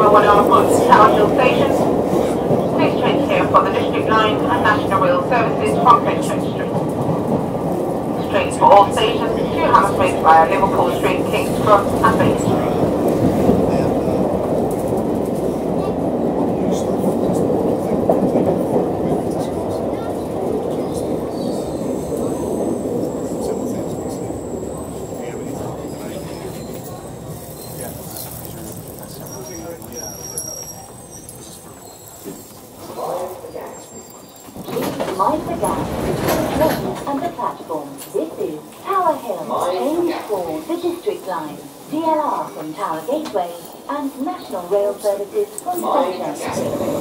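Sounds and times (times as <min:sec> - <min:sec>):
recorded announcement voice: 0:00.0 - 0:07.0, 0:08.2 - 0:13.0, 0:34.6 - 0:47.0
underground train rumbling: 0:00.0 - 0:47.0.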